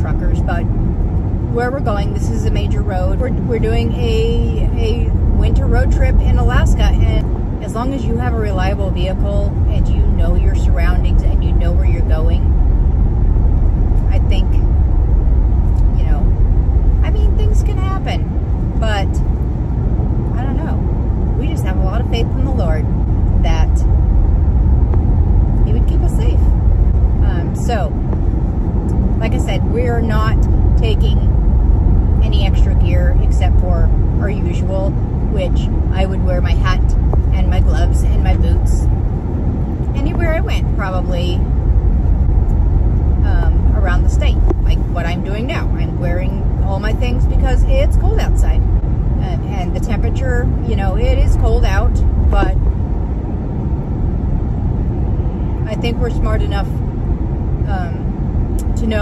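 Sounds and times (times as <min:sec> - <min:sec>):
woman talking: 0:00.0 - 0:00.6, 0:01.5 - 0:12.5, 0:14.0 - 0:14.6, 0:15.8 - 0:16.3, 0:17.0 - 0:18.2, 0:18.8 - 0:19.2, 0:20.4 - 0:20.8, 0:21.4 - 0:23.8, 0:25.6 - 0:26.5, 0:27.2 - 0:28.0, 0:29.2 - 0:31.3, 0:32.2 - 0:38.9, 0:39.9 - 0:41.5, 0:43.2 - 0:48.6, 0:49.2 - 0:52.6, 0:55.6 - 0:56.8, 0:57.6 - 0:59.0
car rumble inside cabin: 0:00.0 - 0:59.0.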